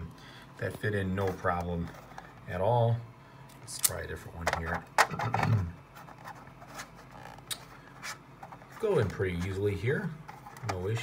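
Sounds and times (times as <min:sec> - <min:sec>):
rubbing and handling: 0:05.8 - 0:11.0.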